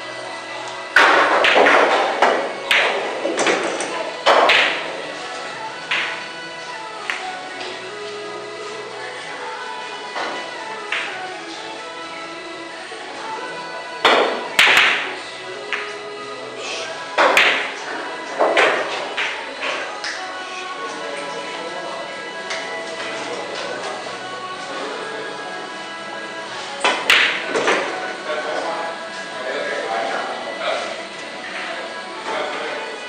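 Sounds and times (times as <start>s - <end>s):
background music: 0.0s - 33.0s
pool balls clacking: 0.6s - 8.9s, 10.0s - 16.3s, 17.0s - 21.4s, 26.6s - 28.8s.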